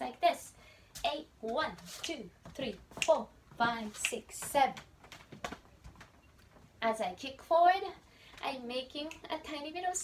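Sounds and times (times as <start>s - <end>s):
shoes tapping on floor: 1.0s - 6.6s.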